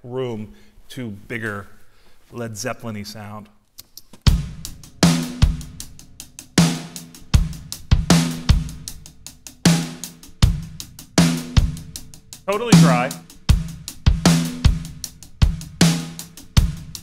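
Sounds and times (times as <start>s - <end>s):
kick drum: 4.3s - 4.6s, 10.4s - 10.8s, 13.5s - 15.8s
cymbals: 4.3s - 17.0s
hi-hat: 4.3s - 17.0s
snare drum: 6.6s - 9.0s, 9.6s - 17.0s.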